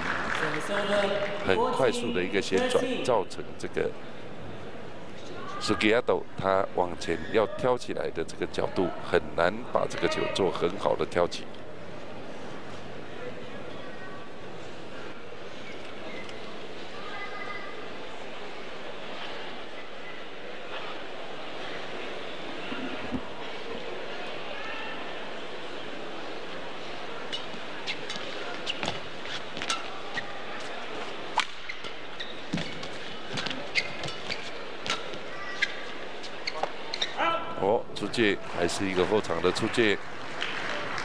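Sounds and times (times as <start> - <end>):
crowd murmur: 8.4 - 32.2.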